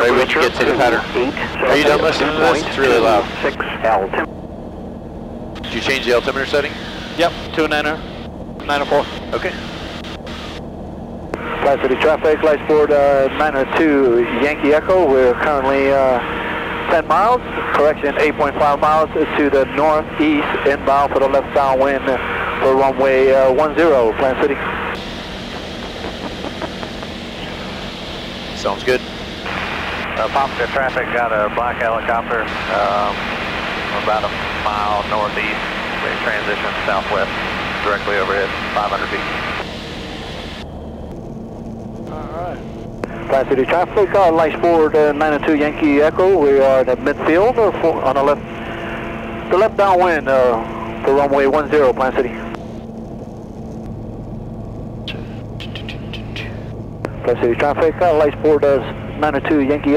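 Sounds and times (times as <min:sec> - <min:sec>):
aircraft engine and propeller drone: 0:00.0 - 0:59.9.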